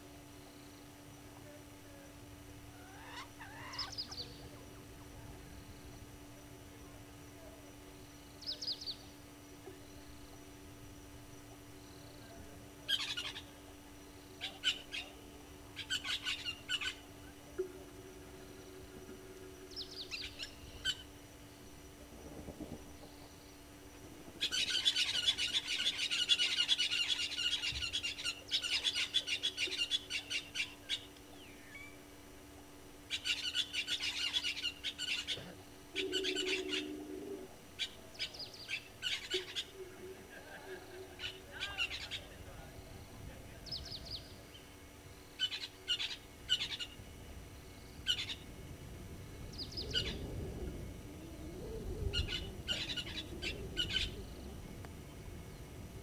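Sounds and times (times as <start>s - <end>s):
birds chattering calls: 0.7s - 56.0s
low hooting note: 17.0s - 21.2s, 35.9s - 37.8s, 48.6s - 56.0s
low rumble: 47.0s - 56.0s.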